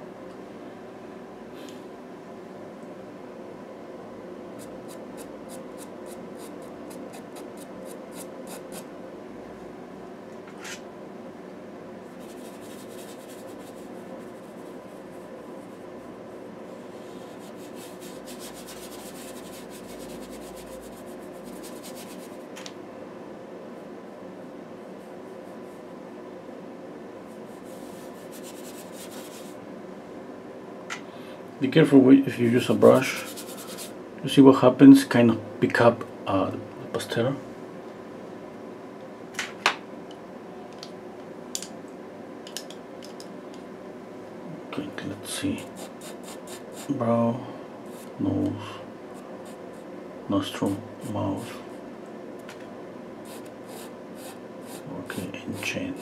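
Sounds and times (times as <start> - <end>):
faint steady hum: 0.0 - 56.0
pastel pencil scratching on paper: 4.6 - 8.9, 12.2 - 15.8, 17.2 - 22.4, 27.5 - 29.6, 33.0 - 33.9, 45.6 - 46.9, 53.2 - 56.0
brush scrubbing over pastel: 12.2 - 15.2, 17.0 - 22.4, 27.4 - 29.6, 33.0 - 34.0.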